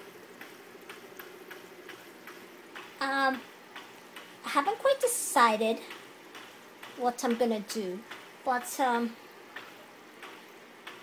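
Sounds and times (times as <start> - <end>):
light ticks: 0.4 - 4.3, 9.6 - 11.0
person speaking: 3.0 - 3.5, 4.4 - 6.0, 6.9 - 9.2.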